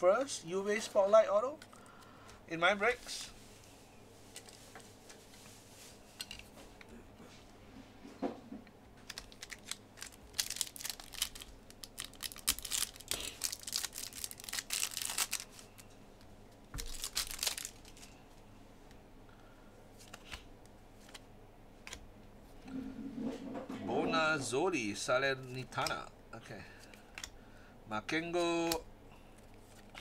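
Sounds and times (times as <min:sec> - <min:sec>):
wrapper tearing and crinkling: 0:09.0 - 0:15.8, 0:16.8 - 0:18.2.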